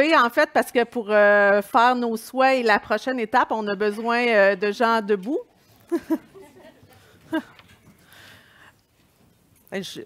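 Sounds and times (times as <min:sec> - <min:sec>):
person chuckling: 0:05.8 - 0:07.8.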